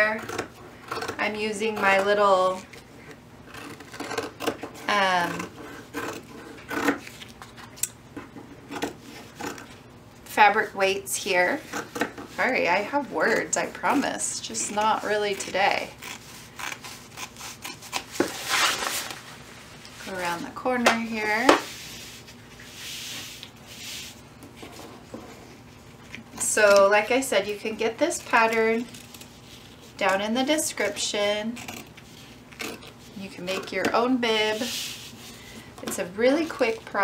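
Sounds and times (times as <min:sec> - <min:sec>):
scissors snipping fabric: 0:03.5 - 0:07.0.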